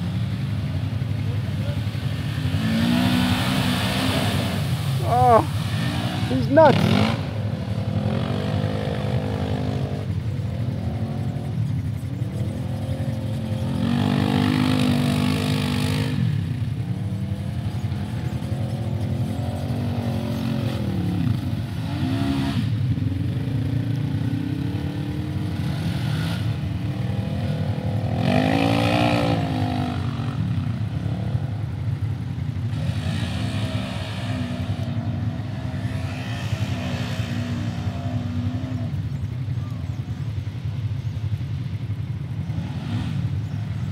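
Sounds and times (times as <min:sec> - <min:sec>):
utility vehicle engines revving: 0:00.0 - 0:43.9.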